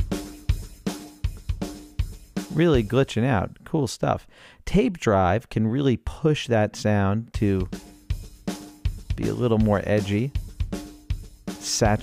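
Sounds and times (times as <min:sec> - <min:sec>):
drum kit rock beat: 0:00.0 - 0:03.2, 0:07.4 - 0:12.0.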